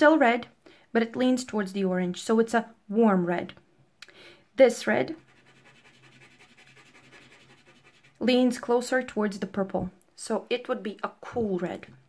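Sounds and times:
pastel scratching on paper: 5.1 - 8.6.

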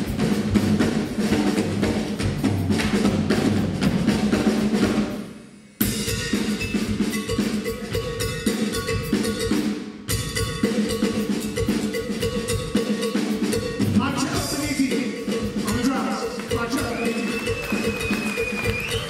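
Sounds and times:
blues band playing: 0.0 - 19.0
drum kit: 0.0 - 19.0.

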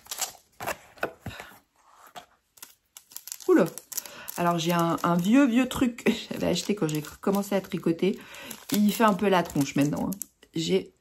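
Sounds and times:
plastic packet crinkling: 0.0 - 0.6, 2.5 - 10.5.

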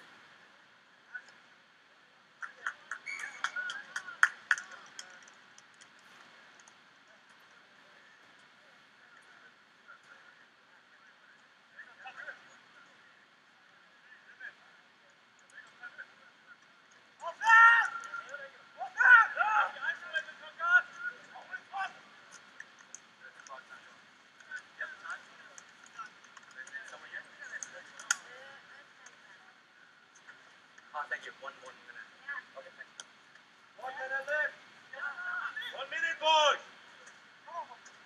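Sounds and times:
people shouting: 17.2 - 18.2, 18.8 - 19.9.

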